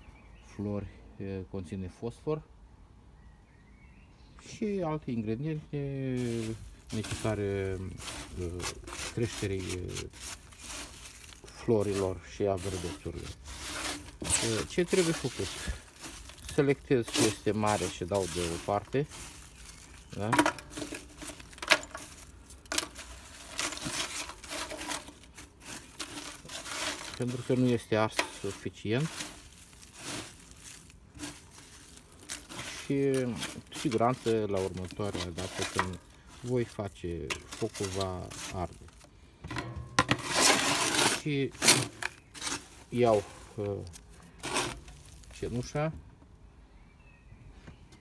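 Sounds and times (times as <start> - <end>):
charcoal scraping and clinking: 6.1 - 45.9.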